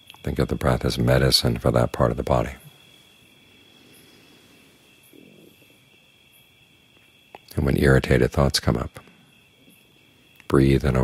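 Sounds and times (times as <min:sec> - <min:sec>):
insect trill: 0:00.0 - 0:11.0.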